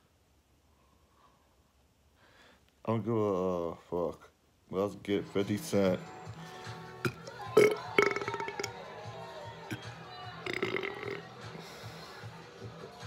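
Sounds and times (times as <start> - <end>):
faint background music: 2.8 - 13.0
man belching: 7.0 - 8.7, 10.4 - 11.3.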